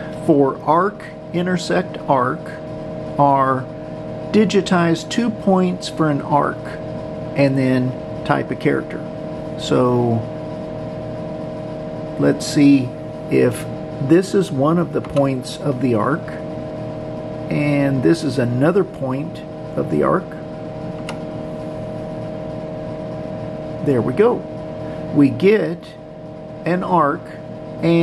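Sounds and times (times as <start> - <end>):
computer cooling fans whirring: 0.0 - 28.0.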